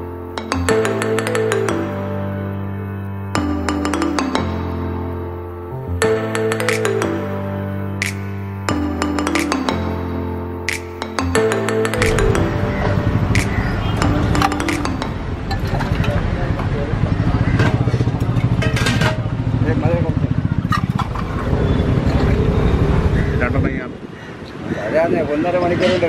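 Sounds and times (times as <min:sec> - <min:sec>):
background music: 0:00.0 - 0:16.9
vehicle engine running: 0:12.0 - 0:23.3.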